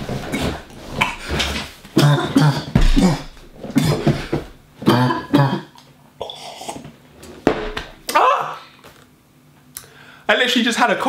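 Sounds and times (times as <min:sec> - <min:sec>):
man coughing harshly: 0:02.0 - 0:05.8.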